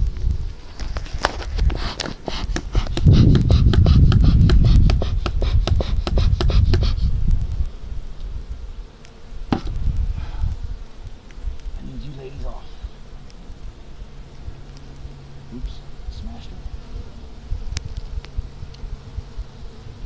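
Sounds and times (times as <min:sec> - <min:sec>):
sharp clicks and scrapes: 0:00.1 - 0:08.3
low rumble on microphone: 0:09.5 - 0:13.0.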